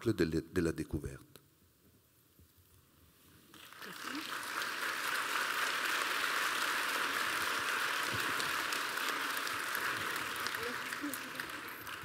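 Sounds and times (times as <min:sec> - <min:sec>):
audience applauding: 0:03.5 - 0:12.0.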